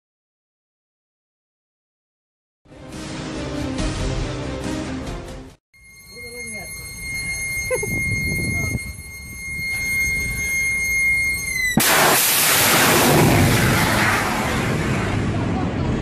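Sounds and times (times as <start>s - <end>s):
high-pitched tone: 5.8s - 11.8s
low rumble: 8.4s - 16.0s
rocket exhaust roar: 9.4s - 16.0s.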